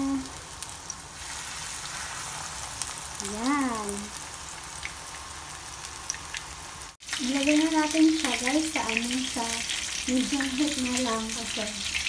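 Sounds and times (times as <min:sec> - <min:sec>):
fish frying in oil: 0:00.0 - 0:12.0.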